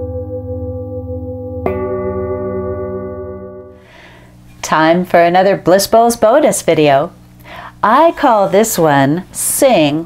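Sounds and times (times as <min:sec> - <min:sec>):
singing bowls ringing: 0:00.0 - 0:03.9
singing bowl struck: 0:00.0 - 0:04.2.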